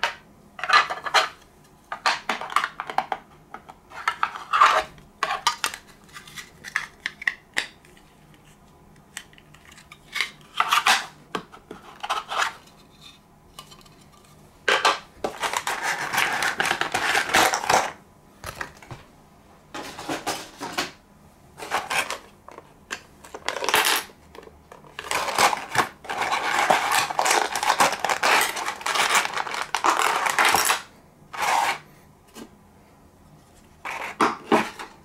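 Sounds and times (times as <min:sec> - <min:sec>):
rustling scrape of packaging: 0:15.3 - 0:17.9, 0:21.6 - 0:22.3, 0:24.9 - 0:31.9, 0:33.8 - 0:35.0.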